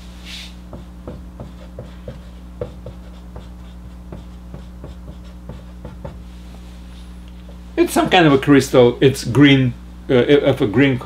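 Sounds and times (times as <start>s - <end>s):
marker writing on a whiteboard: 0.7s - 6.3s.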